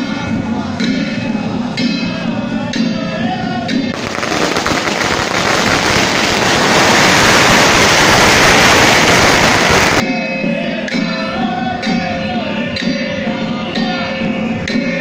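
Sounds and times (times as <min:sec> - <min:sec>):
music: 0:00.0 - 0:04.0, 0:10.0 - 0:15.0
firecrackers crackling: 0:03.9 - 0:10.0.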